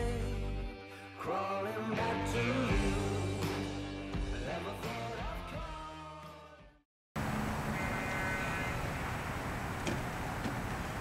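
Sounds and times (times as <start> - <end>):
rock theme music: 0.0 - 6.4
outdoor background noise: 7.2 - 11.0.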